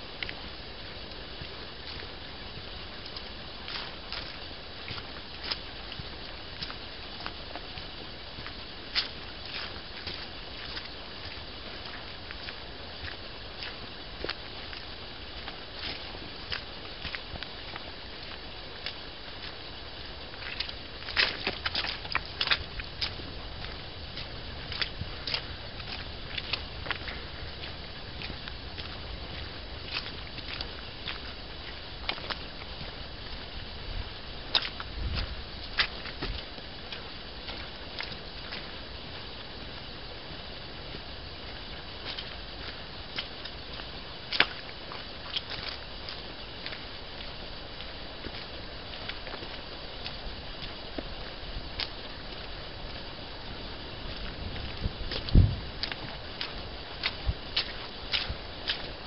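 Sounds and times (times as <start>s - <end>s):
footsteps crunching on stony track: 0.0s - 59.0s
microphone hiss: 0.0s - 59.0s.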